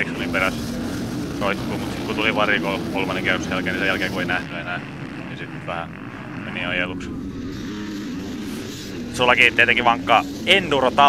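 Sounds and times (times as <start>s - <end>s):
off-road motorcycles racing: 0.0s - 11.0s.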